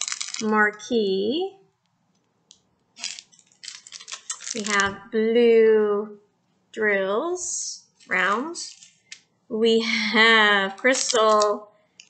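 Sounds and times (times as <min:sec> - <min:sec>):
small drills rattling in plastic bag: 0:00.0 - 0:00.5, 0:03.0 - 0:04.9, 0:10.8 - 0:11.6.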